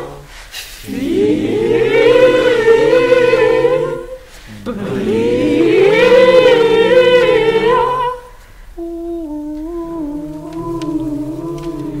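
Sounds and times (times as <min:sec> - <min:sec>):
loud singing: 0:00.0 - 0:08.4, 0:09.3 - 0:12.0
person humming melody: 0:01.0 - 0:12.0.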